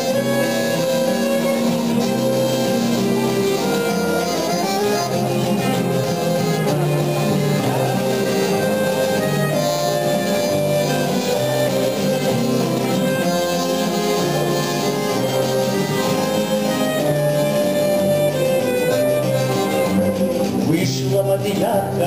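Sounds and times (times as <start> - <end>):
accordion melody: 0.0 - 22.0
acoustic guitars: 0.0 - 22.0.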